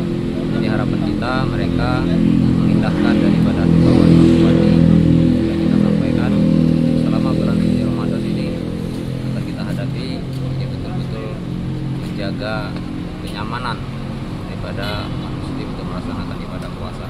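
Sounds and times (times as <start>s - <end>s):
vehicle engine running: 0.0s - 17.0s.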